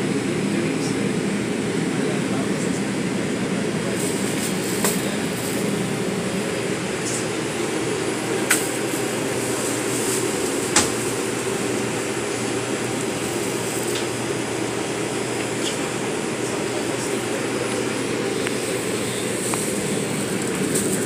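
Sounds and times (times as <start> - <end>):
subway car hum: 0.0 - 21.0
ventilation running: 0.0 - 21.0.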